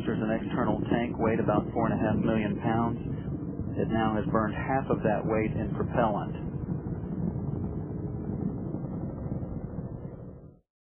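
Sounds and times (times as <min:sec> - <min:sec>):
rocket engines low rumble: 0:00.0 - 0:10.7.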